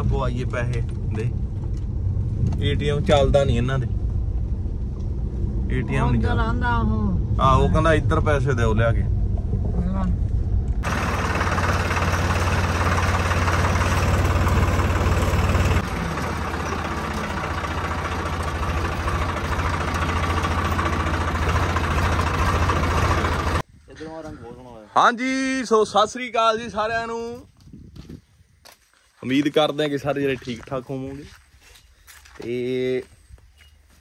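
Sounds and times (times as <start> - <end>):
tractor diesel engine running: 10.3 - 23.7.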